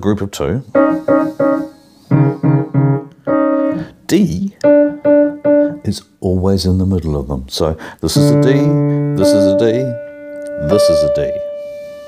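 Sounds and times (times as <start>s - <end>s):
piano notes: 0.7s - 6.0s, 8.1s - 12.0s.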